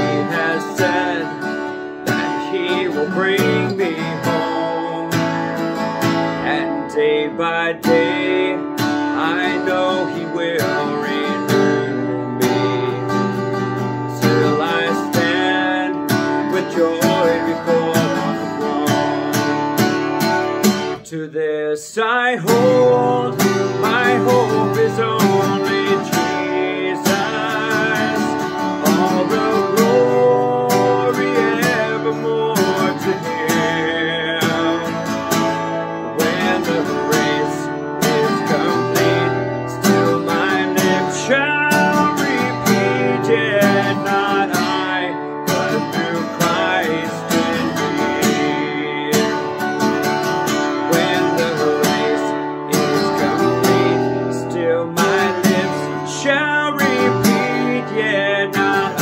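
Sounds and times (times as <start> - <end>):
acoustic guitar strummed: 0.0 - 59.0.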